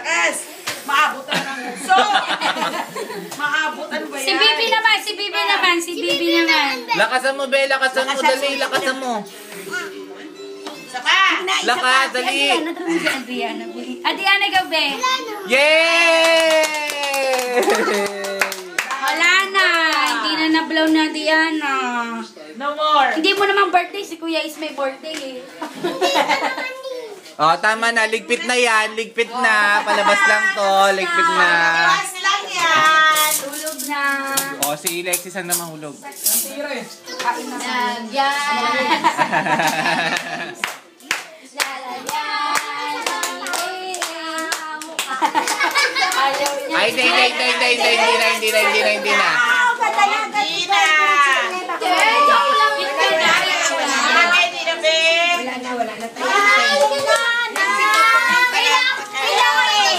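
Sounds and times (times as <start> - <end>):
group singing birthday song: 7.4 - 14.8, 27.7 - 35.5, 36.1 - 59.9
adult excited shout: 15.4 - 18.3
children clapping: 16.1 - 20.2, 39.6 - 46.6, 56.4 - 59.0
hand clapping: 16.2 - 20.2.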